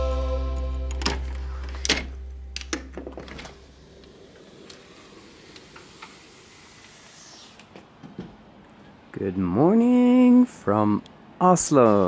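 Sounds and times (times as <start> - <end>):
background music: 0.0 - 3.7.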